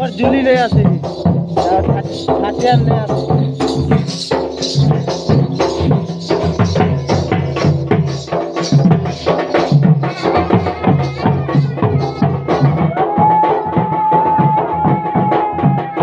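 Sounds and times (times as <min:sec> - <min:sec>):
barrel drum beating: 0:00.0 - 0:16.0.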